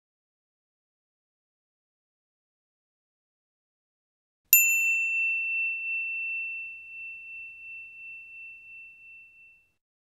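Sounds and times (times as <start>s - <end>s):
high clear bell ding: 4.6s - 9.8s.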